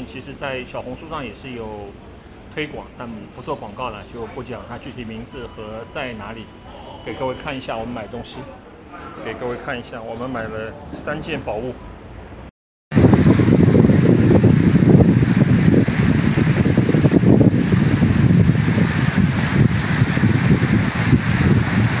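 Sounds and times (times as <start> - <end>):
wind buffeting microphone: 12.9 - 22.0
waves washing onto a beach: 13.0 - 22.0.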